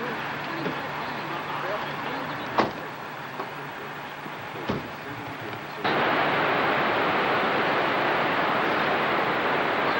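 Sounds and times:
traffic noise: 0.0 - 9.9.

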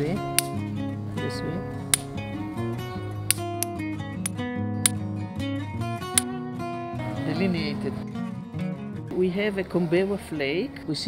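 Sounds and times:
acoustic guitar music: 0.0 - 10.4
hammerstone striking stone: 0.3 - 0.6, 3.3 - 4.4.

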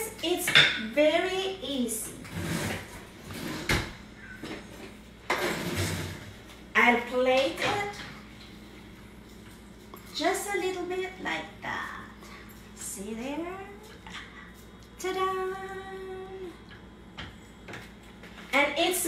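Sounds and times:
rustling and scraping: 2.1 - 6.6.

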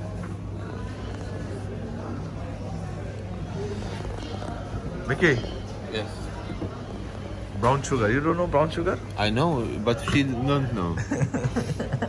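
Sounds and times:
faint voices: 0.0 - 12.0.

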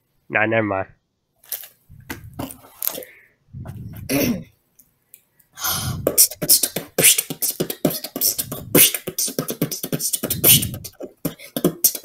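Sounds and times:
beatboxing mouth clicks: 1.9 - 2.6, 5.7 - 12.0
throaty breathy beatbox sound: 1.9 - 4.5, 5.6 - 12.0.

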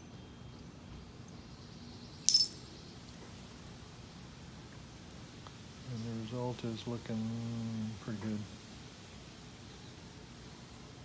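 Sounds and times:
hard object clinking: 2.3 - 2.6.

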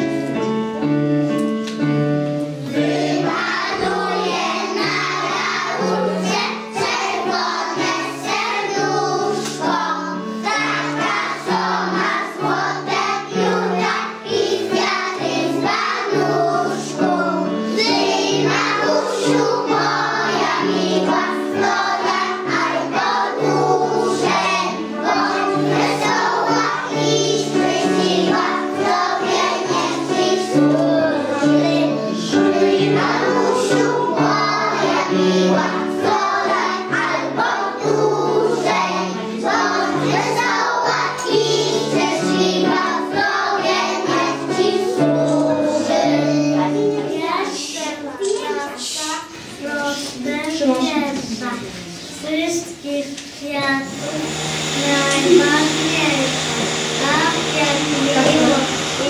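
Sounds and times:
keyboard accompaniment: 0.0 - 47.9, 53.9 - 59.0
children singing in unison: 2.6 - 47.8, 54.3 - 59.0.

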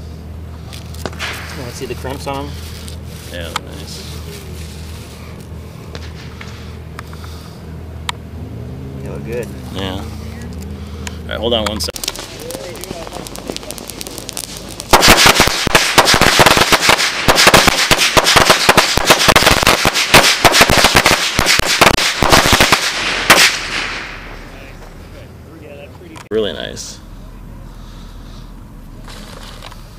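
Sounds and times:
firecrackers crackling: 0.6 - 7.7, 9.9 - 25.2
loud firecracker bang: 1.0 - 2.5, 12.0 - 25.0.

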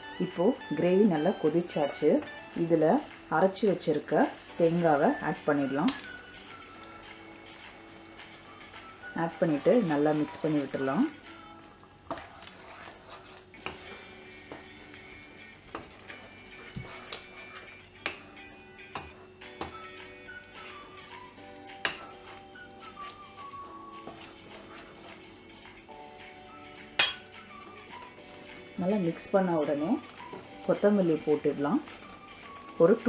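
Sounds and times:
soft background music: 0.0 - 33.0
wooden spatula stirring in a pan: 0.0 - 33.0.

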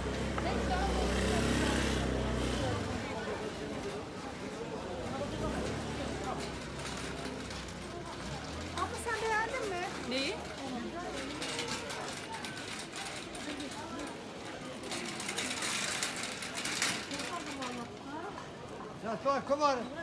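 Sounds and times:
passers-by talking: 0.0 - 20.0.

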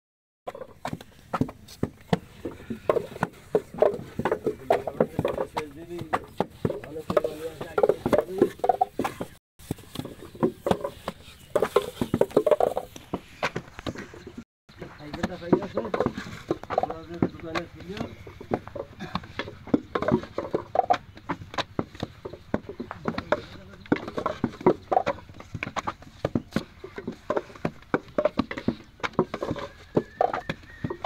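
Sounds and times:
wooden brick moulds knocking: 0.5 - 14.1, 14.7 - 31.0
people talking: 4.2 - 8.6, 14.8 - 16.2, 16.8 - 18.2, 22.9 - 24.3.

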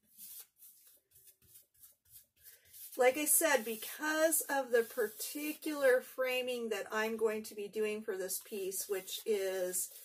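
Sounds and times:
brush strokes: 0.0 - 6.0, 8.4 - 10.0.

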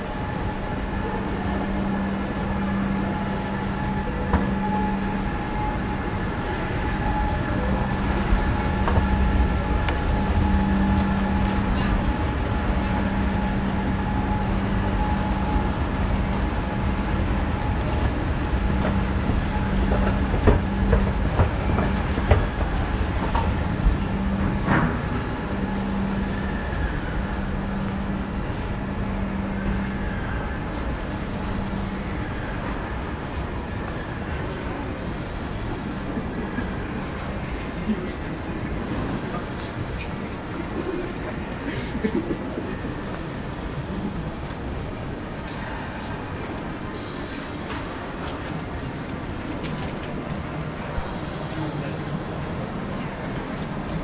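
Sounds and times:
crowd chatter: 0.0 - 54.0
escalator machinery humming: 0.0 - 54.0.

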